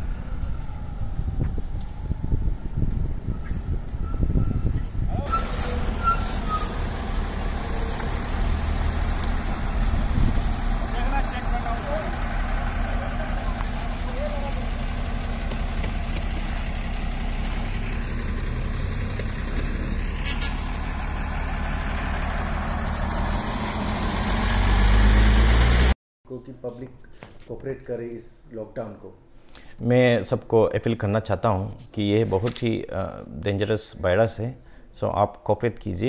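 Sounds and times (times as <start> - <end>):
truck engine rumbling: 0.0 - 26.0.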